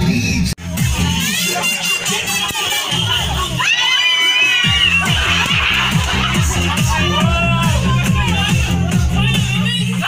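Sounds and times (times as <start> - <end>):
party music with bass beat: 0.0 - 10.0
children shouting and shrieking: 0.8 - 10.0.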